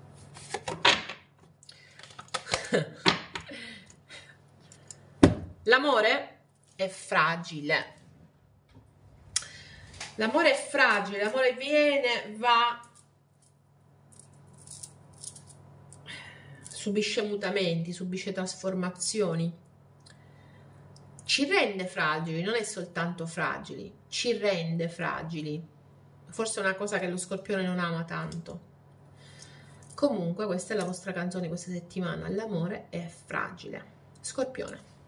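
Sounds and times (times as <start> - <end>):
low steady hum: 0.0 - 35.0.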